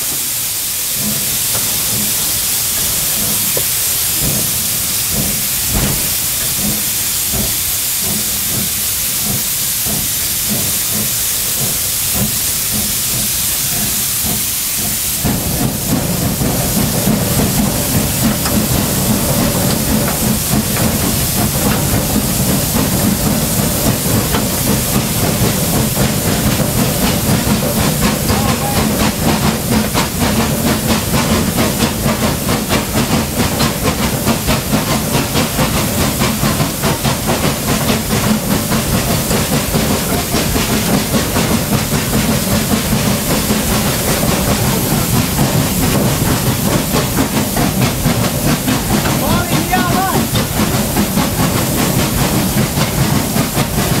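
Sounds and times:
steam hissing: 0.0s - 54.0s
steam locomotive running: 0.0s - 54.0s.

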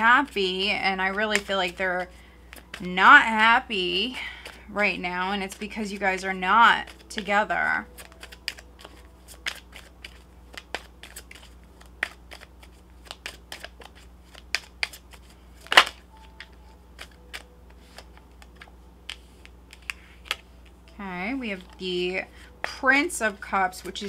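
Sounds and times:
cards being shuffled: 0.0s - 3.0s, 4.1s - 21.0s, 22.6s - 24.0s
card snap: 8.0s - 20.4s.

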